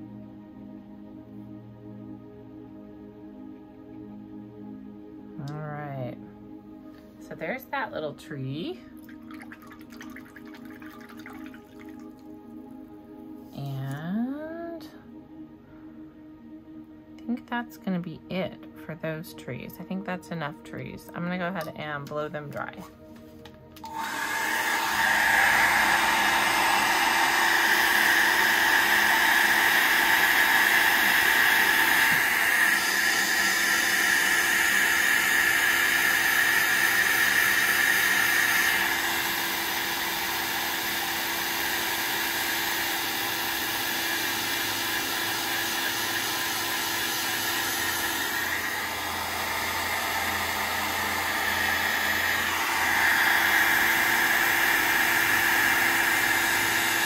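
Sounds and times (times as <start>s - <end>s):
handheld dryer blowing: 23.8s - 57.0s.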